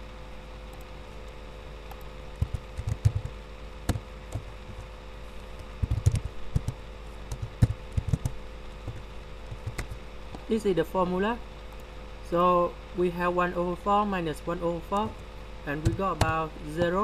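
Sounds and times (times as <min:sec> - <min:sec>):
low electrical hum: 0:00.0 - 0:17.0
keyboard keystrokes: 0:01.9 - 0:04.5, 0:05.8 - 0:10.0.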